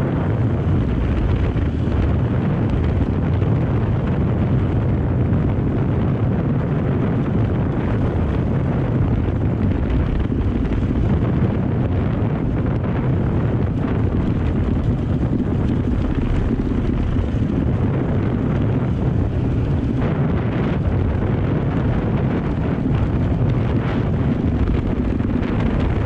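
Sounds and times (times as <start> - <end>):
dirt bike engine running: 0.0 - 26.0
wind rumble on microphone: 0.0 - 26.0.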